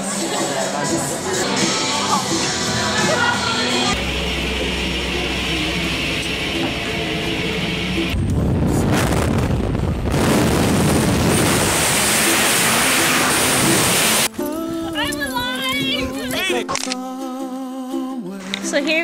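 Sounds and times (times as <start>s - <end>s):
music: 0.0s - 9.4s, 13.0s - 19.0s
steady drone: 1.3s - 14.3s
rush of wind: 8.1s - 12.7s.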